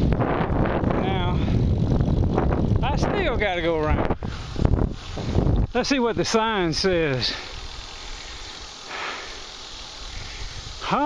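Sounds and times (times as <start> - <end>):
wind rumble on microphone: 0.0 - 8.2, 10.0 - 11.0
faint hiss: 0.0 - 11.0
short breath: 7.2 - 10.8.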